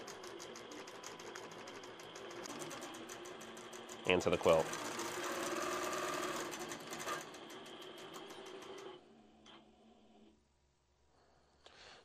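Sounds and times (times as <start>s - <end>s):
quilting machine stitching: 0.0s - 10.3s.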